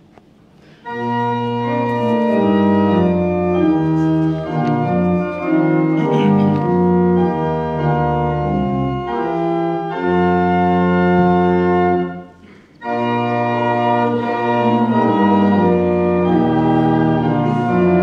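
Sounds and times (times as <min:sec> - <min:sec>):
organ playing hymn chords: 0:00.6 - 0:18.0.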